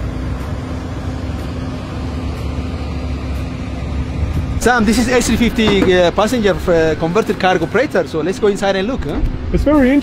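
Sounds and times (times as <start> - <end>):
machinery humming drone: 0.0 - 10.0.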